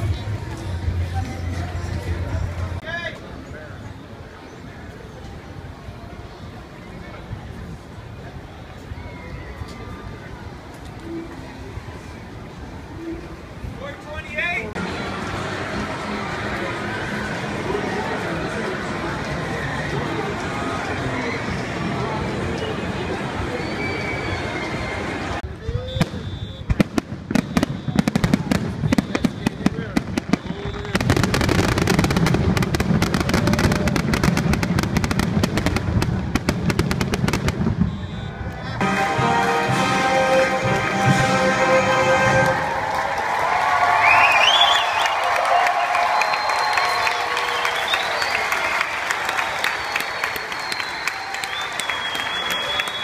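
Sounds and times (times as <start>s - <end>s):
crowd noise: 0.0s - 53.0s
live band music: 38.8s - 42.6s.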